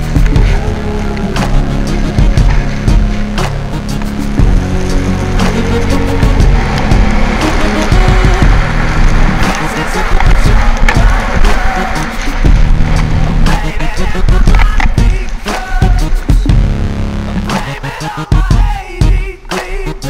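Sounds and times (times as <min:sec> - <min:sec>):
skis scraping over hard snow: 0:00.0 - 0:19.2
background music with bass line: 0:00.0 - 0:20.0.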